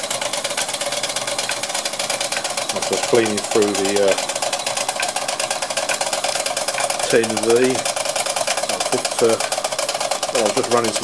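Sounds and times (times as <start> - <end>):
model steam engine running: 0.0 - 11.0.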